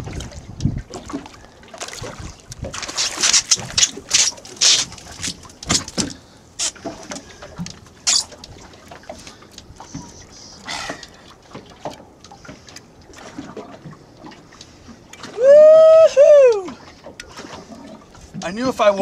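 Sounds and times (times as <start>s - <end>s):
water splashing and sloshing: 0.0s - 19.0s
man whooping: 15.4s - 16.8s.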